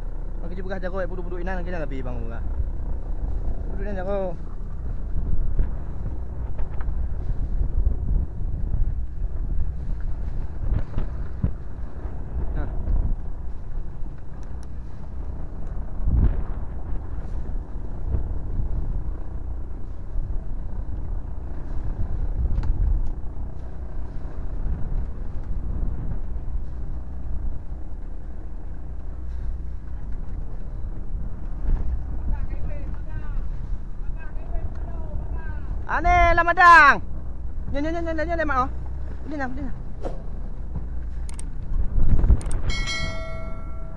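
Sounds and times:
boat engine rumbling: 0:00.0 - 0:43.9.

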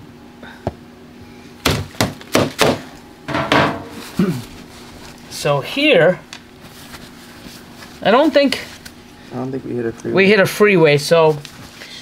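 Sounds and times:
plastic crate knocking against bin: 0:01.7 - 0:03.9.

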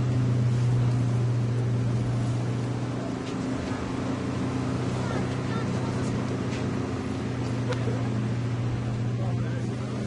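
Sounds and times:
low engine hum: 0:00.0 - 0:10.0
faint voices: 0:04.8 - 0:06.7.

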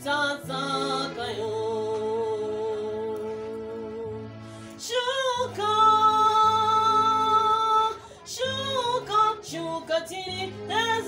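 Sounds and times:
woman singing gospel: 0:00.0 - 0:04.2, 0:04.8 - 0:11.0
low instrumental accompaniment: 0:00.0 - 0:11.0.

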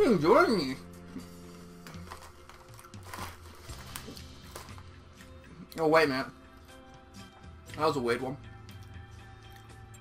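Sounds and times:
quiet background music: 0:00.0 - 0:10.0
tortilla chips being chewed: 0:01.5 - 0:05.0
plastic chip bag crinkling: 0:01.8 - 0:05.0.

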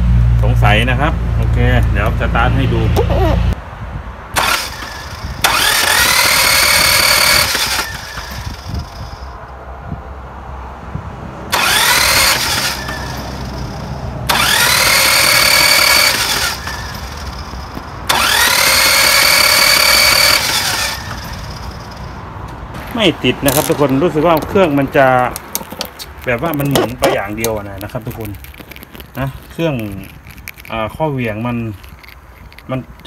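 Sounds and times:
diesel engine cranking on starter: 0:04.4 - 0:09.4, 0:11.5 - 0:22.2.

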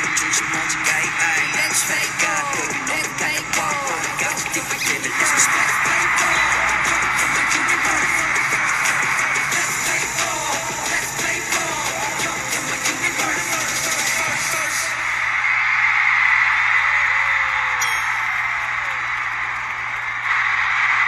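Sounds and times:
live pop song: 0:00.0 - 0:15.2
stadium crowd cheering: 0:00.0 - 0:21.0.

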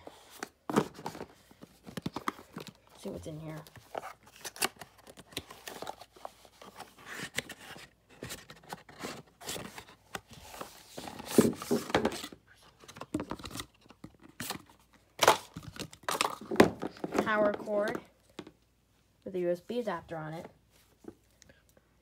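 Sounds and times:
cardboard packaging rustling: 0:00.1 - 0:18.0.

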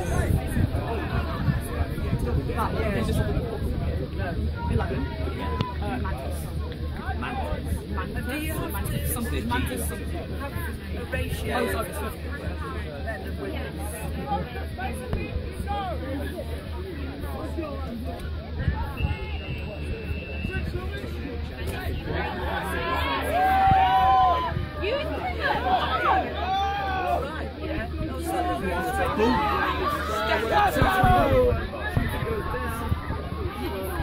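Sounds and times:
voices chattering and calling out: 0:00.0 - 0:34.0.

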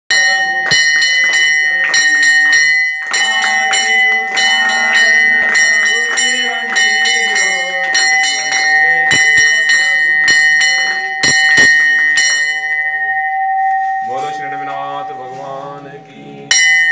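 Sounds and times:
voices chanting: 0:00.1 - 0:12.5, 0:14.4 - 0:16.8
temple bell ringing rapidly: 0:00.1 - 0:16.9.

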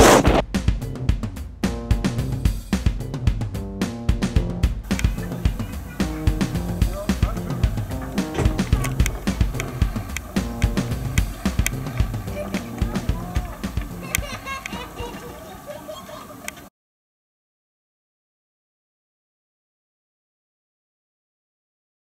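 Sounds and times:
background music with steady beat: 0:00.1 - 0:15.4.

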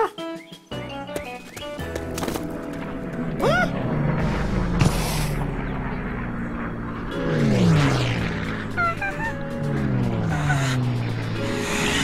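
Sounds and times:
music with falling notes: 0:07.1 - 0:12.0.

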